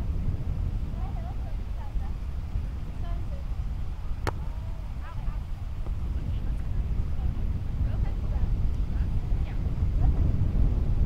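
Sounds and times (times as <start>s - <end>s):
wind buffeting microphone: 0.0s - 11.0s
faint distant voices: 0.9s - 10.4s.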